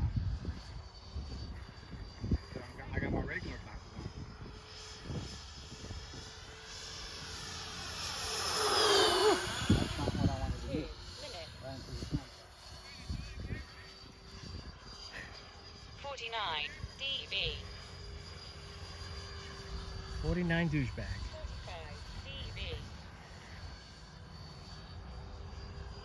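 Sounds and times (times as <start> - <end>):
model jet fans whining: 0.0 - 26.0.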